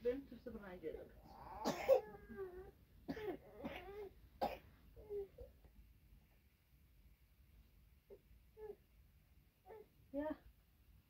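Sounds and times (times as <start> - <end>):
sharp cough: 1.6 - 2.1, 3.1 - 4.7.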